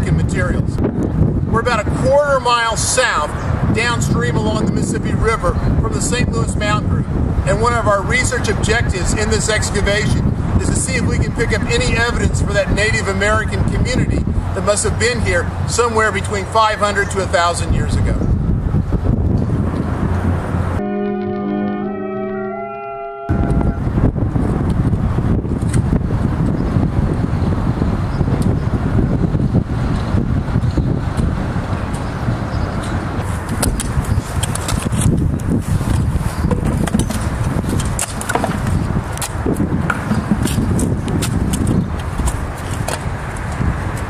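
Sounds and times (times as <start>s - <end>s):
wind buffeting microphone: 0.0s - 20.8s, 23.2s - 44.0s
city traffic: 0.0s - 44.0s
musical sting of held notes: 20.8s - 23.9s.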